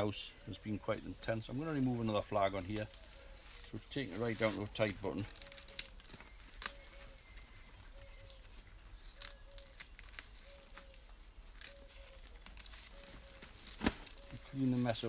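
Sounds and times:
dry leaves crackling and tearing: 0:01.1 - 0:15.0.

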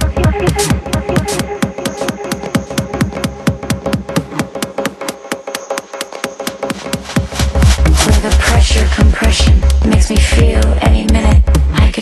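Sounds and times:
ticking techno percussion: 0:00.0 - 0:12.0
heavy bass: 0:06.7 - 0:12.0.

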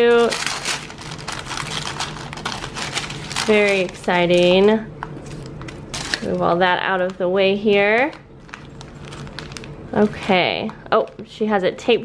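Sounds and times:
plastic sleeve rustling and crinkling: 0:00.0 - 0:11.3.

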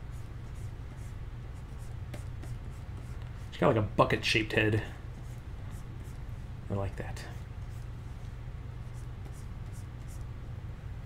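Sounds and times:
stylus strokes on tablet: 0:00.1 - 0:03.6, 0:08.8 - 0:10.2.

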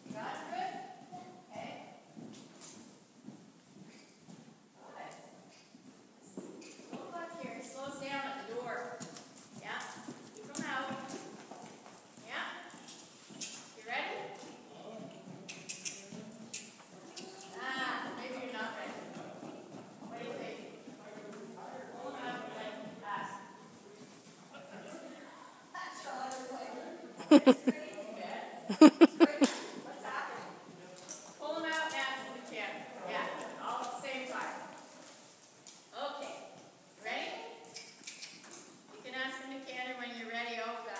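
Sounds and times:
pony hoofbeats on soft dirt: 0:01.6 - 0:24.5
person speaking: 0:27.2 - 0:27.7, 0:28.7 - 0:29.5.

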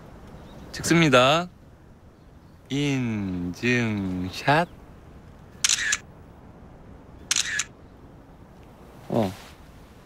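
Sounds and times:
phone camera shutter sound: 0:05.6 - 0:06.1, 0:07.3 - 0:07.7.

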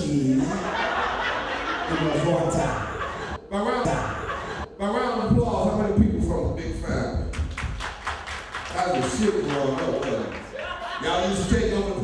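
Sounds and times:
audience applauding: 0:07.4 - 0:11.2.

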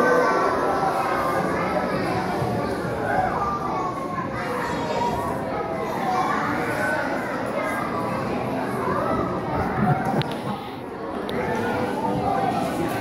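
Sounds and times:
audience chattering and calling out: 0:00.0 - 0:13.0.

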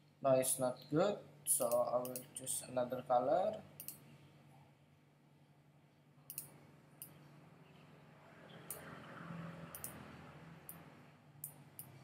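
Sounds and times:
computer mouse clicking: 0:03.8 - 0:04.0, 0:06.3 - 0:07.2, 0:08.6 - 0:08.9, 0:09.7 - 0:10.0.

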